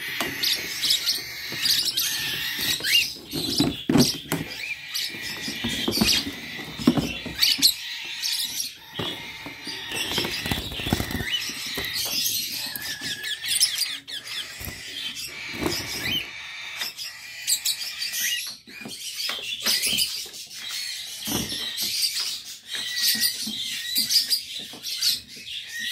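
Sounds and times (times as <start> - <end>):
small parrots chattering: 0.0 - 25.9.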